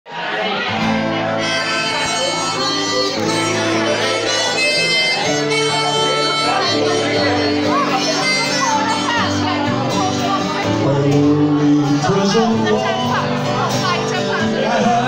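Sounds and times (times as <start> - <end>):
acoustic guitar strumming: 0.2 - 15.0
harmonica slow melody: 0.8 - 15.0.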